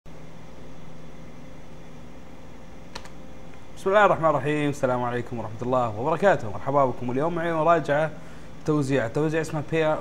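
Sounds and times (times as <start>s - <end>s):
low background hum: 0.1s - 10.0s
sharp click: 2.9s - 3.6s
man speaking: 3.8s - 10.0s.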